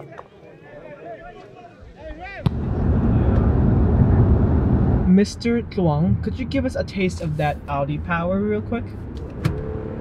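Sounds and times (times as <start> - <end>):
car road and wind noise: 2.5 - 10.0.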